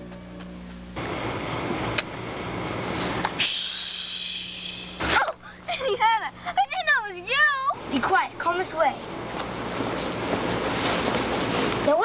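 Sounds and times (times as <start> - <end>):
steady rushing hiss: 0.9 - 12.0
voices: 3.4 - 9.2.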